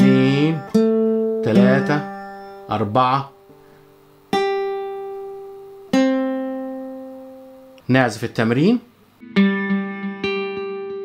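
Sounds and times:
classical guitar plucked notes: 0.0 - 7.8, 9.2 - 11.0.

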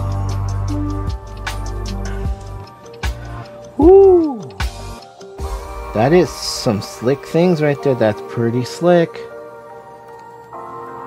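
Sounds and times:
background music: 0.0 - 11.0
hoot-like vocal ooh: 3.8 - 4.6.

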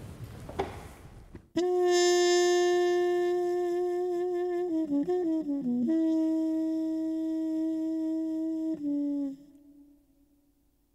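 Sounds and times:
saxophone long note: 1.6 - 10.2.

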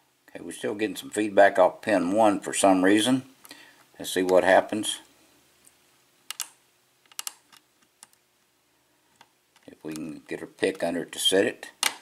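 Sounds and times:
lock pick metallic clicks: 6.3 - 8.2.

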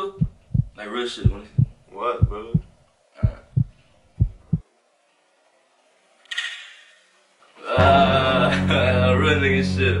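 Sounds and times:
heartbeat thumps: 0.0 - 4.7.

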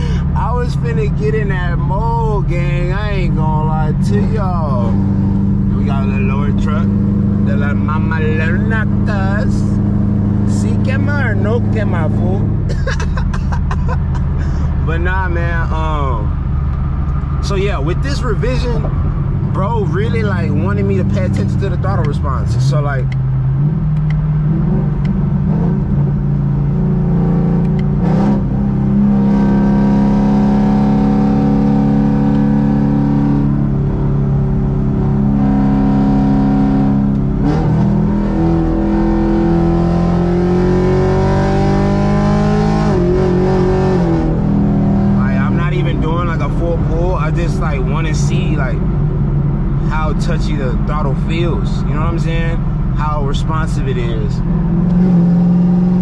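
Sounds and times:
car engine droning: 0.0 - 56.0.

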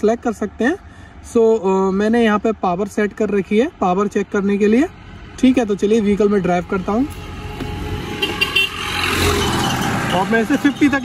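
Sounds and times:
electric scooter road noise: 4.4 - 11.0.

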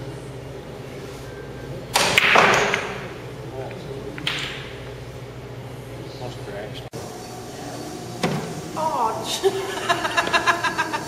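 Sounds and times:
cue ball cracking into racked balls: 1.9 - 3.2, 4.2 - 4.8
pool balls clacking: 1.9 - 4.9.

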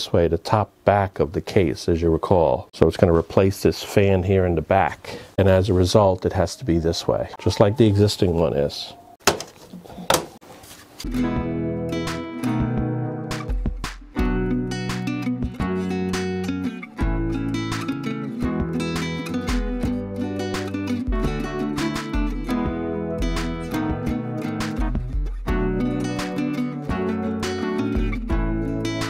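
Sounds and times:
strummed acoustic guitar: 11.0 - 29.0
bass line: 11.2 - 17.9, 18.5 - 29.0.

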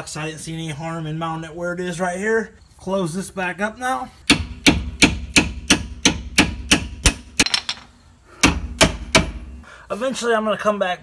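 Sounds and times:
hammer striking metal: 4.3 - 7.8, 8.4 - 9.5.

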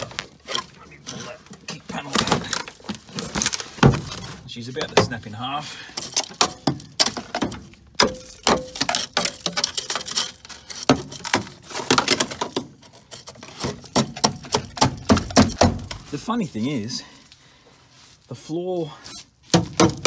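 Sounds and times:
car trim cracking and crunching: 0.0 - 5.3.

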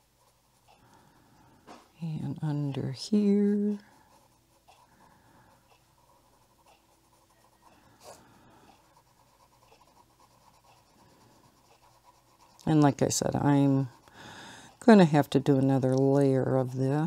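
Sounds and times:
colored pencil scratching on paper: 0.0 - 17.0
pencil tick: 15.8 - 16.2.

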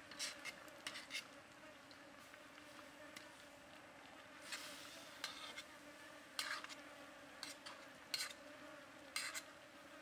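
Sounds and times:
faint buzzing hum: 0.0 - 10.0
metal tongs scraping a wok: 4.5 - 5.7, 6.4 - 6.8, 9.2 - 9.5.

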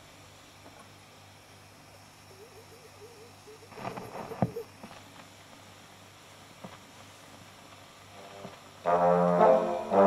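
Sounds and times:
amplifier hum: 0.0 - 10.0.

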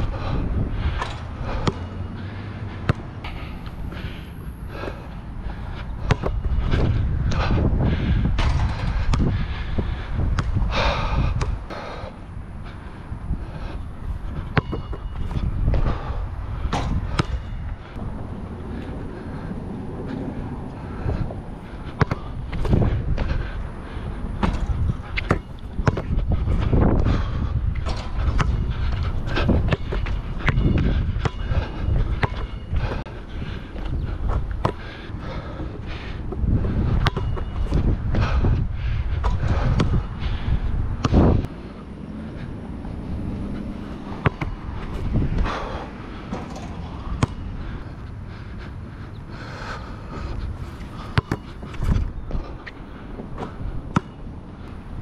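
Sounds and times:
wind rumbling on microphone: 0.0 - 55.0
basketball bouncing on hard court: 1.0 - 1.9, 6.0 - 6.4, 14.5 - 15.1, 16.7 - 17.5, 22.0 - 22.8, 24.4 - 27.2, 27.8 - 28.6, 29.6 - 32.6, 37.0 - 37.5, 44.1 - 44.6, 46.3 - 47.4, 51.1 - 52.4, 53.4 - 54.2.

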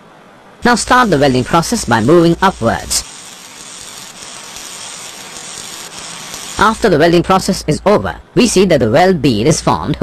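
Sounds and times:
gas welding torch hissing: 0.6 - 7.8.

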